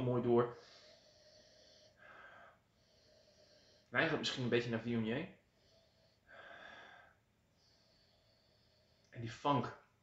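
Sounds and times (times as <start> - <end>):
faint nose breathing: 0.3 - 9.5.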